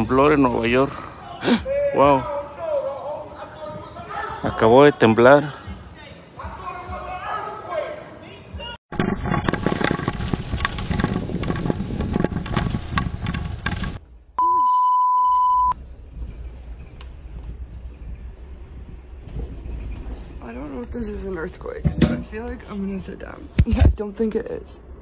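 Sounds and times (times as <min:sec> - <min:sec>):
earthquake rumble with rattling: 0:08.9 - 0:14.1
high beep: 0:14.4 - 0:15.8.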